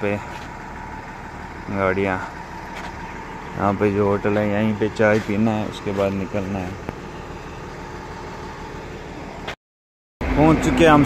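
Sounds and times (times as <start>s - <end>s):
vehicle engine humming: 0.0s - 9.6s, 10.2s - 11.0s.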